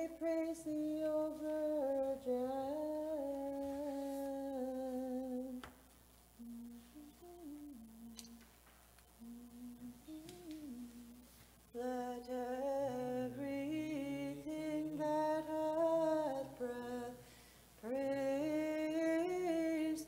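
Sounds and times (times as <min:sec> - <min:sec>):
person chanting wordless melisma: 0:00.0 - 0:05.7, 0:09.2 - 0:20.0.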